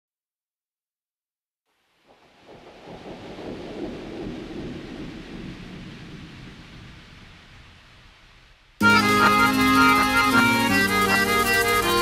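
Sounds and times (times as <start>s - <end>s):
thunder rolling: 2.1s - 8.8s.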